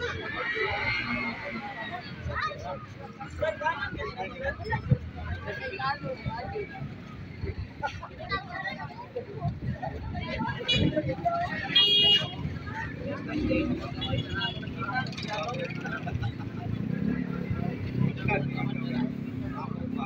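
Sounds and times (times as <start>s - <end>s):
people talking: 0.0s - 20.0s
street traffic: 0.0s - 20.0s
vehicle horn toot: 11.8s - 12.3s.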